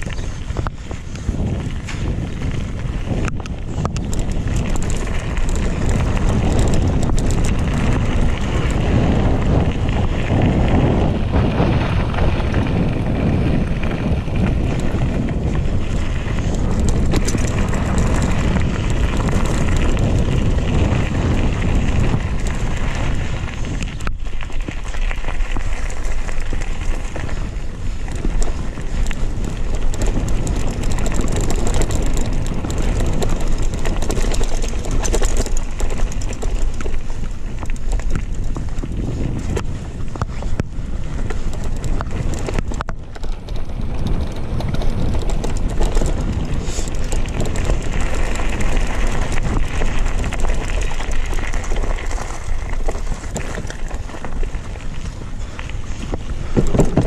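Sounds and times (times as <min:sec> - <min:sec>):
bike clicks and rattles: 0:00.0 - 0:57.0
tyres on loose gravel: 0:00.0 - 0:57.0
wind on microphone: 0:00.0 - 0:57.0.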